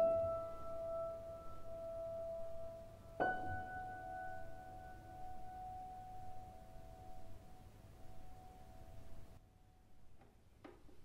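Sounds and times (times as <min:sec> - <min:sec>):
piano note ringing: 0:00.0 - 0:09.1.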